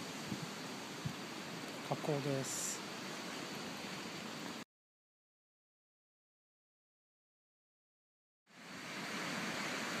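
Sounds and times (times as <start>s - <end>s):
small waves breaking on sand: 0.0s - 4.6s, 8.5s - 10.0s.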